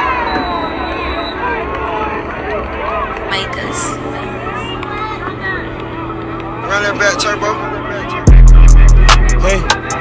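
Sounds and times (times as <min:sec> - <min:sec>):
people shouting: 0:00.0 - 0:03.2
crowd chatter: 0:00.0 - 0:10.0.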